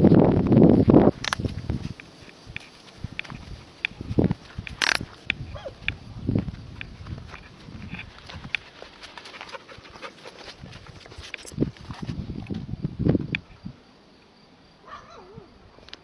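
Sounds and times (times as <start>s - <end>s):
footsteps on dirt road: 0.0s - 13.5s.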